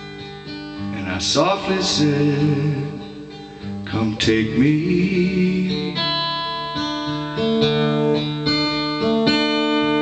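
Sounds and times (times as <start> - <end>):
acoustic guitar picking: 0.0 - 10.0.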